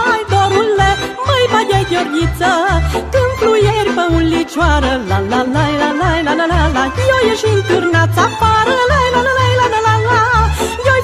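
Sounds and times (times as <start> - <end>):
bass line: 0.0 - 11.0
folk band playing: 0.0 - 11.0
violins: 0.0 - 11.0
woman singing la la: 0.0 - 11.0.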